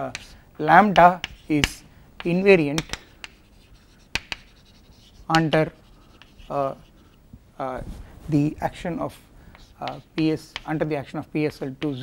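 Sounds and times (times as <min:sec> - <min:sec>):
chalk tapping on board: 0:00.0 - 0:07.2, 0:09.5 - 0:10.9
chalk scratching on blackboard: 0:00.1 - 0:07.2, 0:09.5 - 0:10.8.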